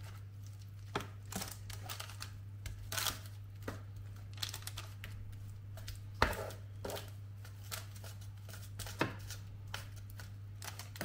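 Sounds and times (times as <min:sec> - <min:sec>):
steady low hum: 0:00.0 - 0:11.0
wooden spoon tapping and scraping: 0:05.0 - 0:10.3.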